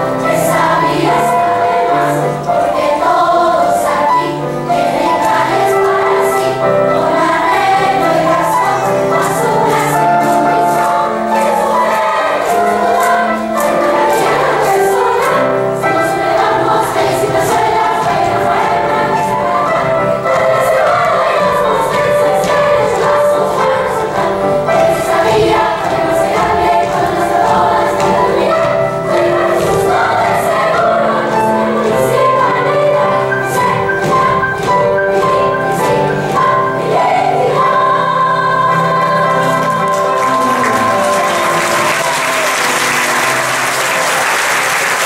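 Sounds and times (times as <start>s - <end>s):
girls' choir singing a polka: 0.0s - 45.0s.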